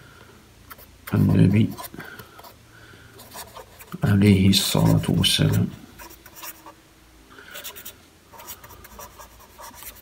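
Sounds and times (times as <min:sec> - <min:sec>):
pen scratching on paper: 0:04.8 - 0:06.8, 0:07.6 - 0:10.0.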